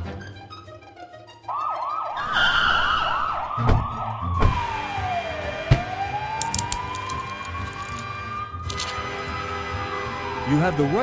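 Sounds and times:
police siren wailing: 0:01.4 - 0:07.9, 0:09.8 - 0:11.0.

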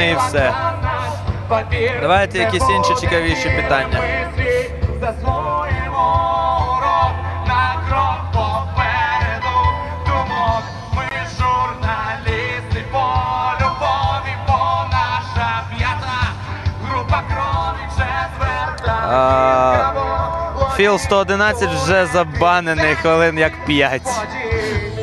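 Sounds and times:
live rock band: 0:00.0 - 0:25.0
singer's melody: 0:00.0 - 0:25.0.

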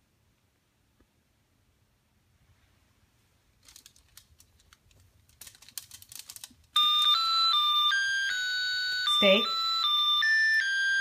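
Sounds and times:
faint clicks and rustling: 0:03.3 - 0:07.2
toy playing electronic beeping tune: 0:06.8 - 0:11.0.

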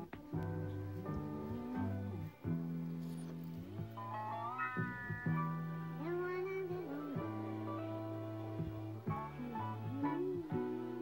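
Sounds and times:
music from vinyl record: 0:00.0 - 0:11.0.

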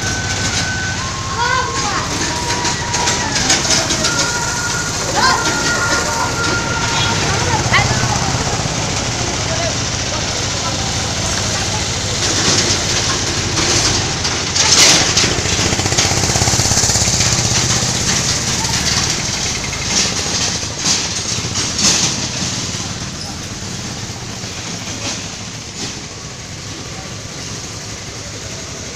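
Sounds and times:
street noise: 0:00.0 - 0:28.9
vehicle engine running: 0:00.0 - 0:28.9.

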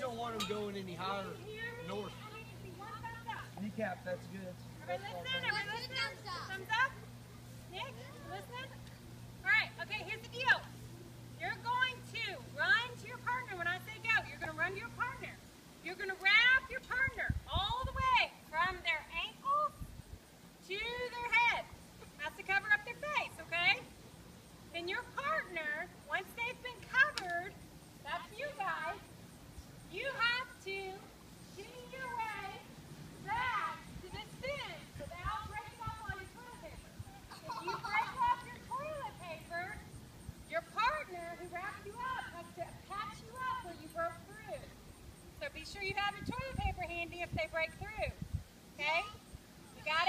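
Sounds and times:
children calling: 0:00.0 - 0:03.6, 0:04.6 - 0:15.3, 0:30.0 - 0:44.9
steady low hum: 0:00.0 - 0:50.0
woman talking: 0:01.4 - 0:03.6, 0:09.4 - 0:10.7, 0:11.4 - 0:19.8, 0:20.7 - 0:23.9, 0:24.8 - 0:29.1, 0:29.9 - 0:39.9, 0:40.5 - 0:44.7, 0:45.4 - 0:48.2, 0:49.8 - 0:50.0.

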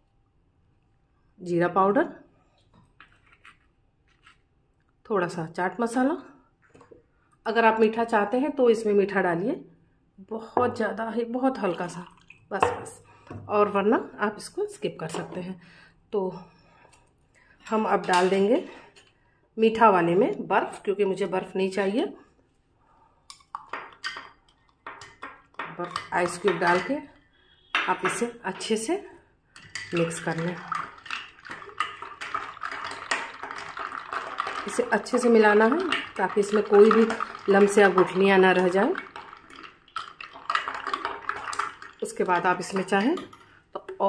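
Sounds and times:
liquid swishing: 0:30.3 - 0:42.9.

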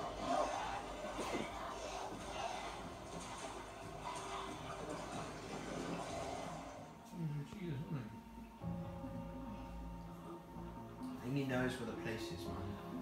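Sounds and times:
background score music from tv: 0:00.0 - 0:13.0.

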